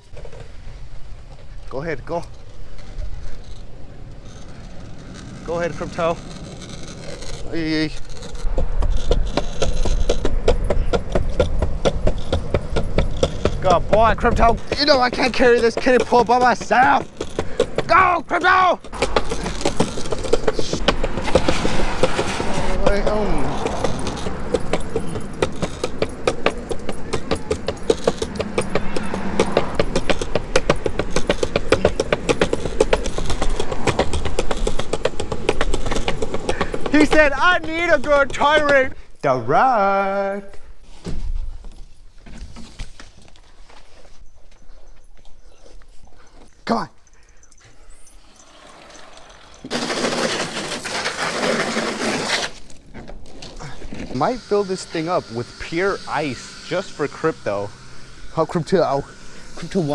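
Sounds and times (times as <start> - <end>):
skateboard wheels rolling on concrete: 0.0 - 44.2, 47.6 - 59.9
water rushing from garden hose: 48.2 - 52.6, 54.1 - 59.9.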